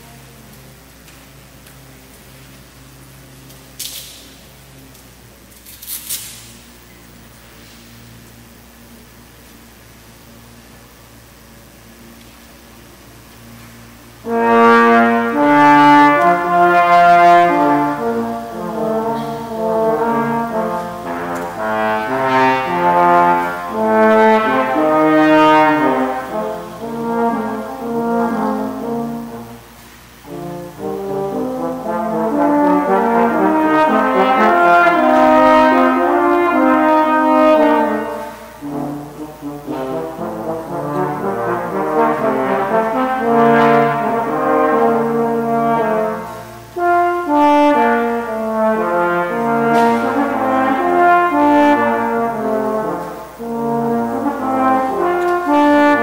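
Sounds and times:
room noise: 0.0 - 56.0
trombones playing together: 0.0 - 56.0.

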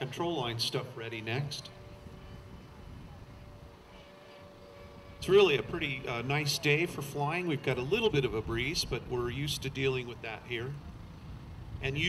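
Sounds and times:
model plane hum: 0.0 - 12.0
wind rumble on microphone: 1.6 - 6.4, 7.9 - 10.0.

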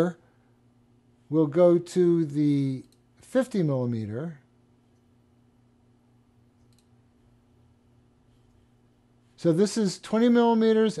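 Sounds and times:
low room hum: 0.0 - 11.0
computer mouse click: 6.6 - 7.0.

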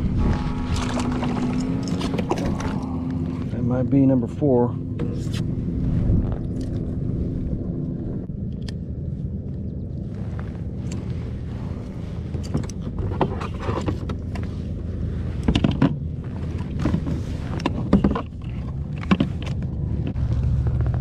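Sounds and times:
wind rumble on microphone: 0.0 - 21.0
knocks and rattles of handling: 12.2 - 14.5, 15.3 - 21.0.

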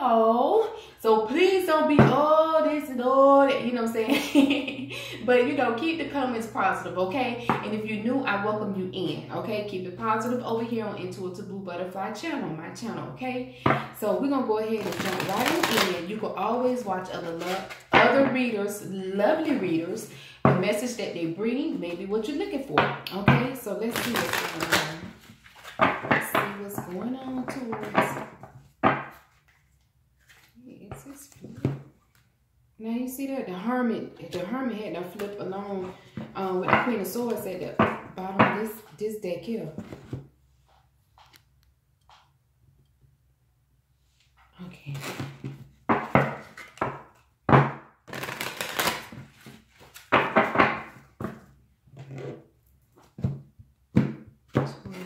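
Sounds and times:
cards being shuffled: 23.9 - 26.2, 29.0 - 32.3, 48.1 - 50.4.

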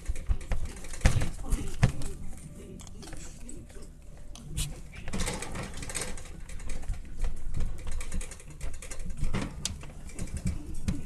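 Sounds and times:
puppy scratching and tugging toy: 0.0 - 11.0.

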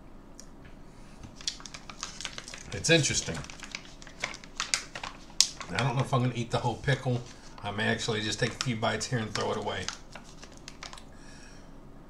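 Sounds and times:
plastic pouch crinkling: 1.2 - 11.1.

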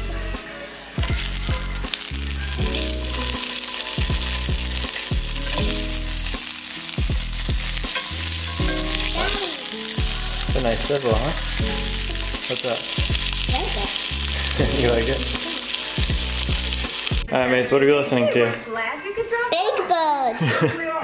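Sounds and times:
sausages sizzling in oil: 0.0 - 17.3
background music: 0.0 - 20.6.

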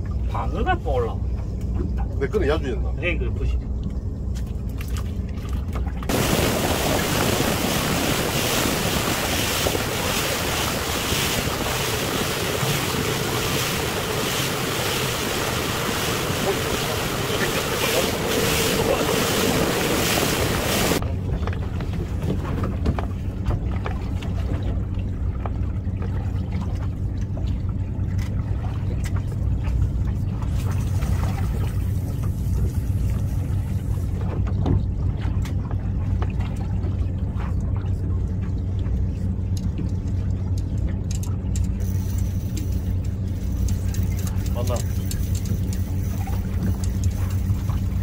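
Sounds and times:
outboard motor humming: 0.0 - 48.0
water hissing past hull: 6.1 - 21.0
wind rushing on microphone: 6.1 - 21.0.

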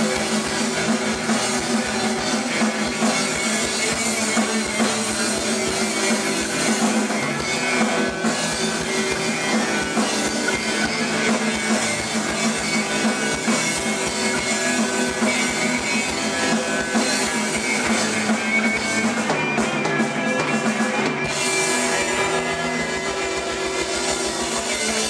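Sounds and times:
drum kit: 0.0 - 25.0.

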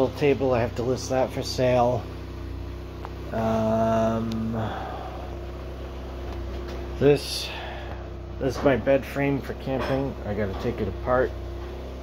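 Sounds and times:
faint constant tone: 0.0 - 12.0
low mechanical hum: 0.0 - 12.0.

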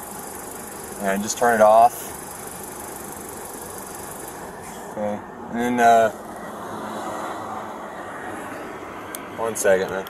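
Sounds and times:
road traffic rumble and hiss: 0.0 - 10.0.

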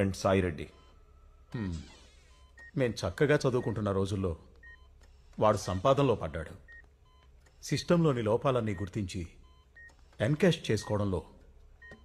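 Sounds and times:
man speaking: 0.0 - 0.9, 1.5 - 2.1, 2.7 - 4.6, 5.4 - 6.7, 7.6 - 9.5, 10.2 - 11.4
faint two-tone electronic beeps: 0.0 - 12.0.

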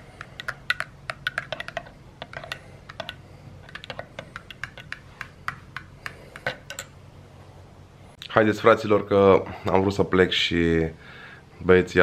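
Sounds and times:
teaspoon clinking in mug: 6.4 - 6.9.

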